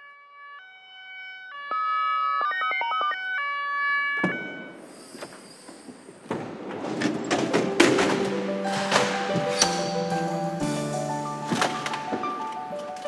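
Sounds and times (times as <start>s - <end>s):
ambulance siren: 0.0s - 4.9s.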